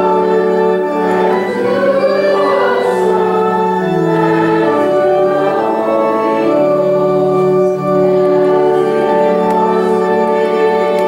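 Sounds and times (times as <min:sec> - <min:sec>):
organ playing: 0:00.0 - 0:11.0
voices singing church song: 0:00.0 - 0:11.0.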